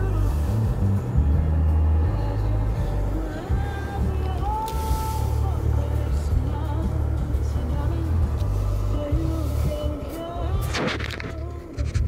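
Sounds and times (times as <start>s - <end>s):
car rumble inside cabin: 0.0s - 12.0s
music playing: 0.0s - 12.0s.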